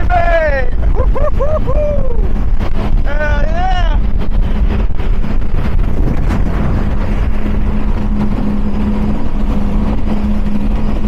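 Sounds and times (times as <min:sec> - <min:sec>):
powerboat running at speed: 0:00.0 - 0:11.0
wind on microphone: 0:00.0 - 0:11.0
man whooping: 0:00.1 - 0:02.3.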